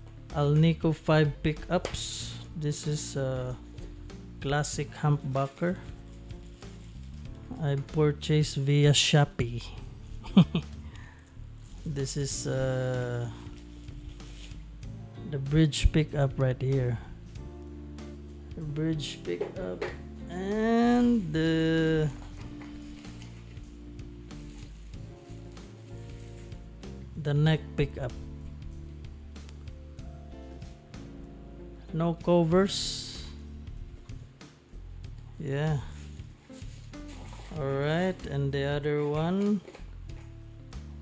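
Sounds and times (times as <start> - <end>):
soft background music: 0.0 - 41.0
man talking: 0.4 - 3.6, 4.4 - 5.8, 7.5 - 9.8, 11.8 - 13.4, 15.2 - 17.1, 18.6 - 22.3, 27.2 - 28.2, 31.9 - 33.4, 35.4 - 36.1, 37.5 - 39.6
plastic wrap crinkling: 4.9 - 7.6, 12.9 - 14.8, 22.0 - 26.8, 35.8 - 38.0.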